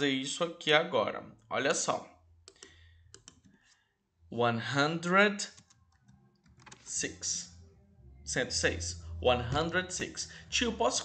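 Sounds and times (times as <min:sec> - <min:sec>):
computer mouse and key clicks: 0:02.4 - 0:03.6, 0:05.4 - 0:06.9.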